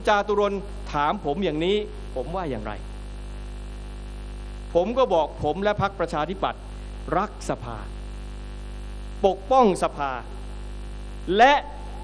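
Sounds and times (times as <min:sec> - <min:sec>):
man's amplified speech: 0:00.0 - 0:02.9, 0:04.7 - 0:07.9, 0:09.2 - 0:10.4, 0:11.2 - 0:12.0
electrical mains hum: 0:00.0 - 0:12.0.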